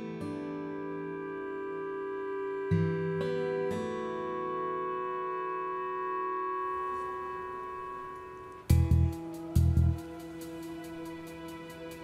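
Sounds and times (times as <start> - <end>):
sustained chord background music: 0.0 - 12.0.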